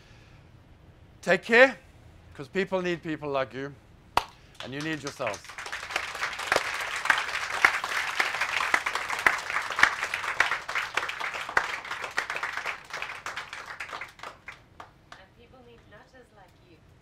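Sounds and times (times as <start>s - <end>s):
audience applauding: 4.6s - 14.9s.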